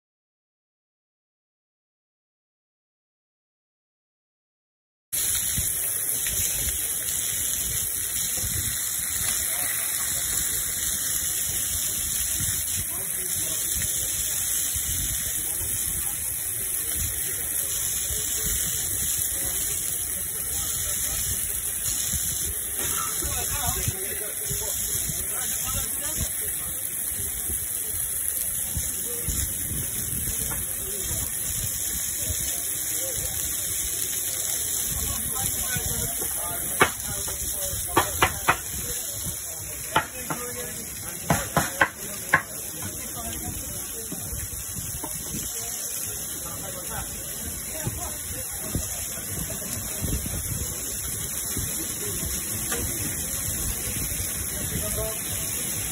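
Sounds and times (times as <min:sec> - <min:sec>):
chicken sizzling on griddle: 0:05.2 - 0:55.9.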